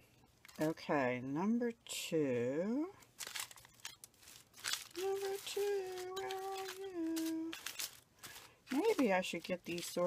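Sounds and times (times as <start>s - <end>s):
plastic bags crinkling: 3.0s - 10.0s.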